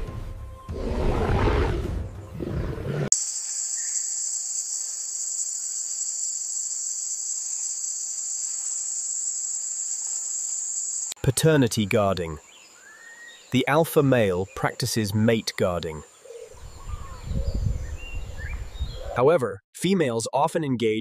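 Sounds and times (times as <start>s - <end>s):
music: 0.0s - 3.0s
high-pitched insect chorus: 3.1s - 11.2s.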